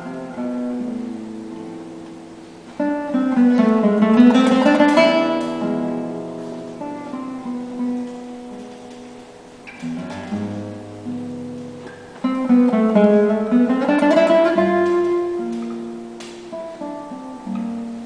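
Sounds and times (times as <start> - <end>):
acoustic guitar music: 0.0 - 18.0.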